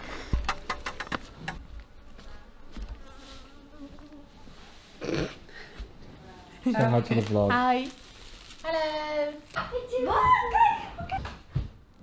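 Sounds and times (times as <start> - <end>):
flying insect buzzing: 1.9 - 5.4.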